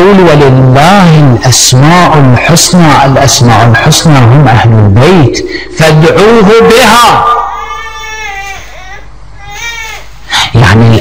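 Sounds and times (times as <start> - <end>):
person preaching: 0.0 - 7.9, 10.3 - 11.0.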